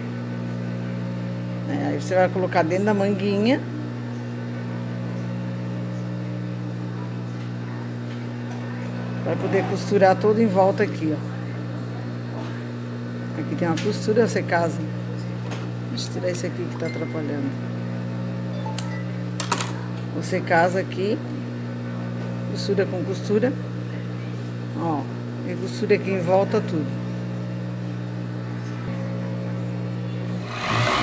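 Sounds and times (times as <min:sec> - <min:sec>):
sewing machine motor humming: 0:30.2 - 0:31.0.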